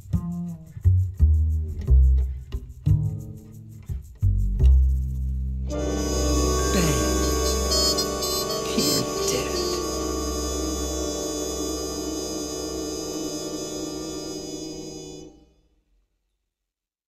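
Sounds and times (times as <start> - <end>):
orchestra holding final chord: 5.7 - 15.4.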